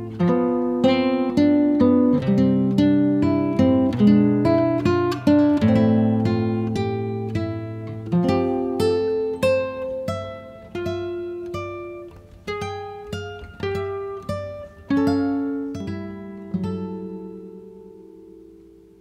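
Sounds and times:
acoustic guitar plucking: 0:00.0 - 0:19.0.

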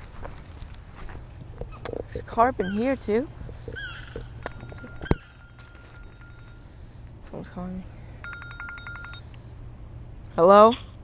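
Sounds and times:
phone ringing electronic tone: 0:04.4 - 0:06.6, 0:08.2 - 0:09.3.

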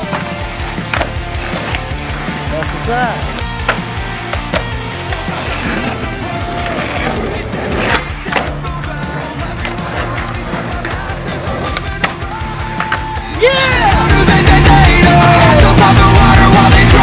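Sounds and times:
skateboard clacks: 0:00.0 - 0:05.9, 0:06.5 - 0:13.3
rock music: 0:00.0 - 0:17.0
skateboard wheels rolling on concrete: 0:00.0 - 0:17.0.

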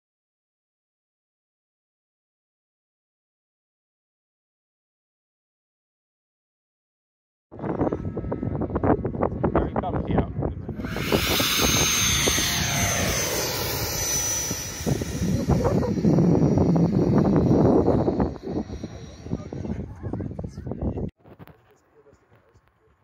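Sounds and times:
wind buffeting microphone: 0:07.6 - 0:21.4
glider rushing past: 0:10.8 - 0:20.6.

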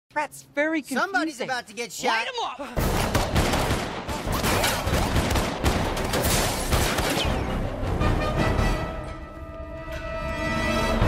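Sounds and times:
gunfire barrage: 0:02.8 - 0:07.6.

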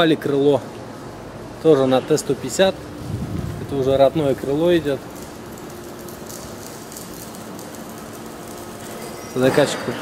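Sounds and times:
background hiss: 0:00.3 - 0:10.0.

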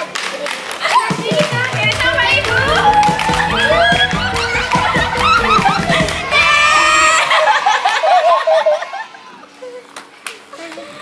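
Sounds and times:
background music: 0:00.9 - 0:07.8.

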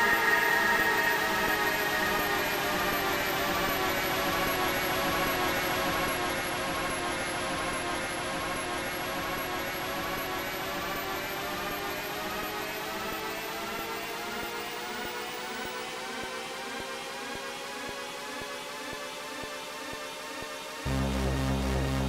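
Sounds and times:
synthesizer drone: 0:00.0 - 0:03.6, 0:20.9 - 0:22.0.

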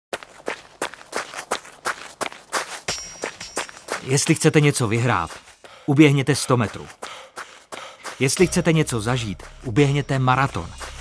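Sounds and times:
running footsteps: 0:00.1 - 0:11.0.

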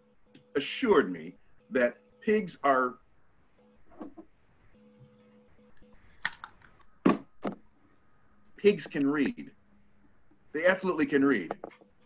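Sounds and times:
laptop handling clicks and knocks: 0:06.2 - 0:07.7.

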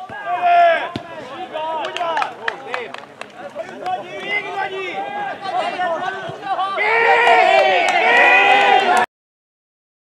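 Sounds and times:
people shouting: 0:03.9 - 0:09.1.

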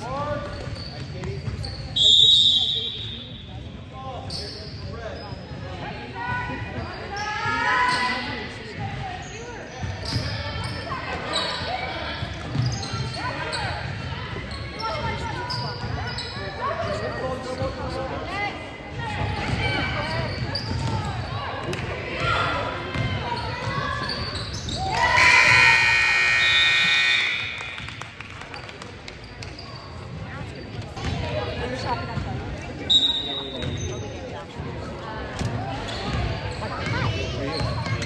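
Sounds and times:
players' voices: 0:00.0 - 0:38.0
scoreboard horn blast: 0:25.2 - 0:27.8.

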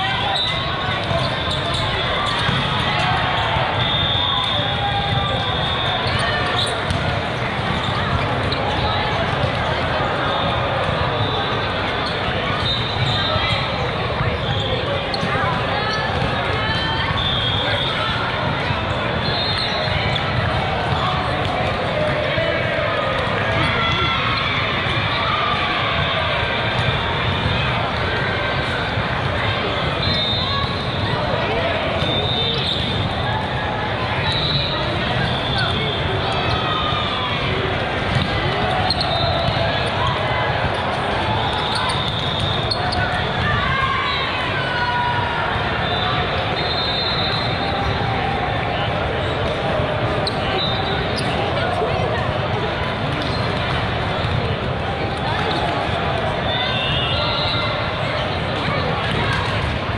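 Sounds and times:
volleyballs being hit and bouncing: 0:00.0 - 0:03.8, 0:04.5 - 0:17.2, 0:34.9 - 0:43.8
hubbub of echoing voices: 0:00.0 - 0:59.9.

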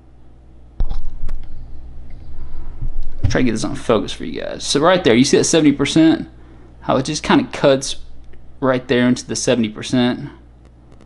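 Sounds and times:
low handling rumble: 0:01.1 - 0:05.0.

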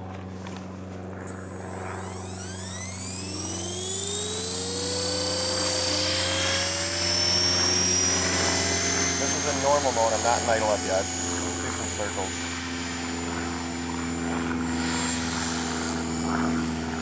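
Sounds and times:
rc helicopter motor whine spooling up: 0:00.0 - 0:17.0.

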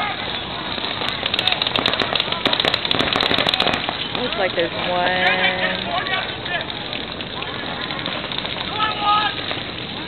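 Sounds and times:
paintball markers firing rapidly: 0:00.8 - 0:09.8.

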